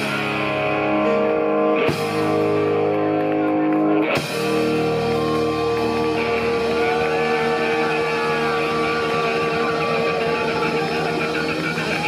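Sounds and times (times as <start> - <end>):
live rock band: 0.0 - 12.0
sliding guitar notes: 0.0 - 12.0.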